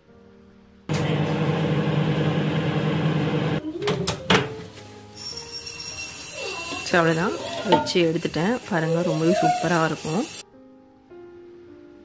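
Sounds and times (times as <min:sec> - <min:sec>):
microwave oven humming: 0:00.9 - 0:03.6.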